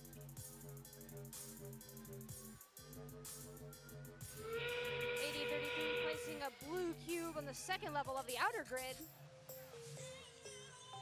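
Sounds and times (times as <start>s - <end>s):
arena music with steady beat: 0.0s - 10.1s
rising whistle-like warning tone: 4.3s - 6.8s.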